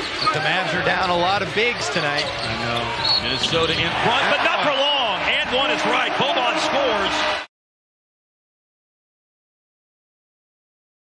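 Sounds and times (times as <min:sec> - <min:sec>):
arena crowd noise: 0:00.0 - 0:07.5
sneakers squeaking on hardwood: 0:01.6 - 0:03.9.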